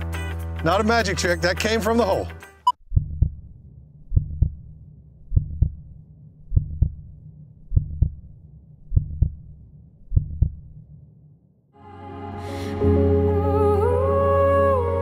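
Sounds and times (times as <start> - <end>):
heartbeat thumps: 2.8 - 3.5, 4.1 - 11.0.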